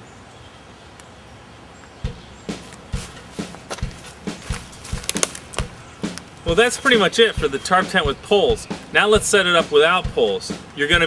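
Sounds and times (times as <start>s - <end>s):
steady background hiss: 0.0s - 11.0s
footsteps: 2.0s - 7.7s.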